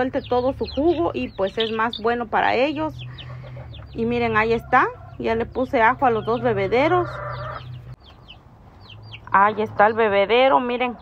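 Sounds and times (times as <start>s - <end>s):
people talking: 0.0s - 3.1s, 3.9s - 7.2s, 9.3s - 11.0s
chicks peeping: 0.0s - 11.0s.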